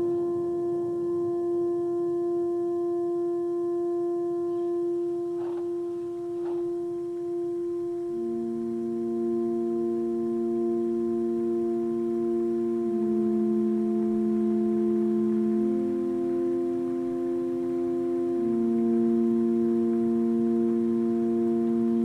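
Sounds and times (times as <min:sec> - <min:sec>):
ambient electronic music: 0:04.2 - 0:22.0.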